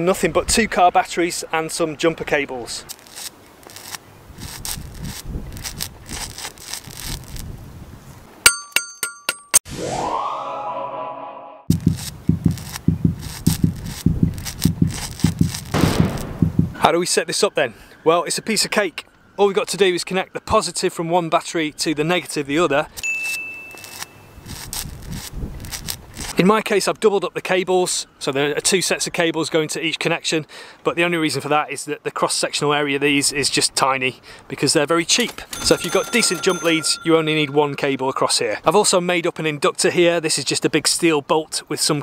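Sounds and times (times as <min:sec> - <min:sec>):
welding arc crackling: 0:02.9 - 0:07.5, 0:11.7 - 0:16.5, 0:23.8 - 0:26.4
metallic ding: 0:08.5 - 0:09.6, 0:23.0 - 0:24.3, 0:35.6 - 0:38.5
high bell-like chime: 0:23.0 - 0:24.4, 0:35.6 - 0:38.6.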